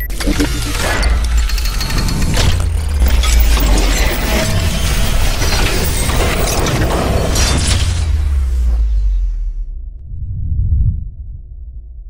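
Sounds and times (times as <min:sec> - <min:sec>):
deep bass rumble: 0:00.0 - 0:06.1, 0:07.9 - 0:12.0.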